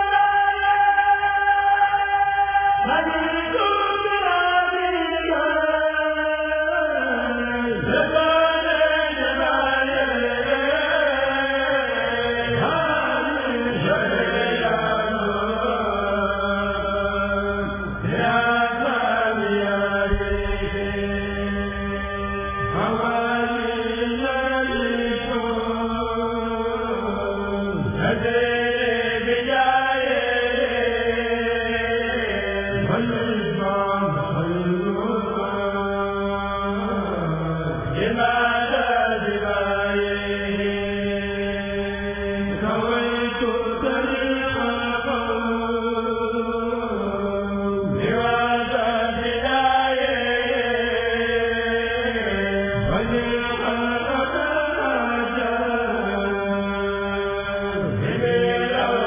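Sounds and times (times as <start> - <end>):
men's choir chanting: 0.0 - 59.0.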